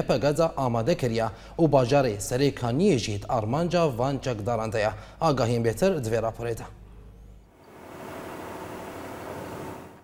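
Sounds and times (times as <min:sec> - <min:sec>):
steady outdoor hiss: 0:07.5 - 0:10.0.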